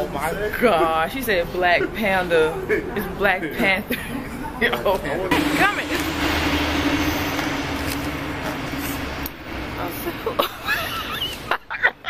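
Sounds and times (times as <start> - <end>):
road noise: 5.3 - 12.0
vehicle engine hum: 5.3 - 12.0.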